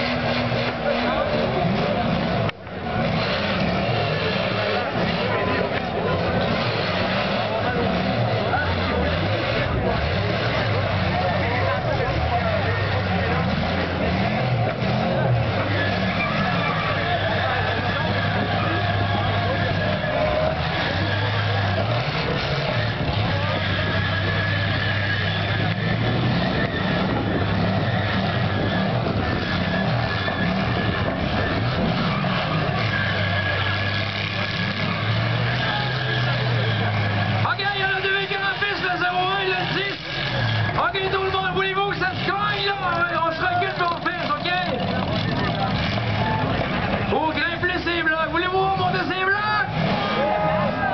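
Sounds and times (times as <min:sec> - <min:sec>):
car engines revving: 0:00.0 - 0:50.9
crowd noise: 0:00.0 - 0:50.9.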